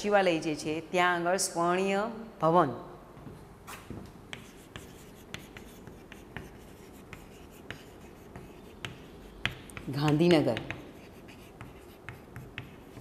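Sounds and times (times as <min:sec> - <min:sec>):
chalk writing on blackboard: 0:04.3 - 0:13.0.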